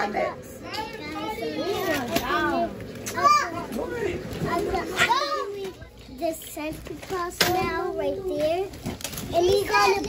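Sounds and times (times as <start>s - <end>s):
young children talking and calling: 0.0s - 10.0s.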